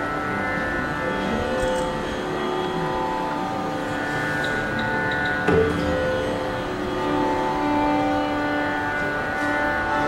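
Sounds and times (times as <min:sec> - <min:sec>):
mandolin and violin drone: 0:00.0 - 0:10.0.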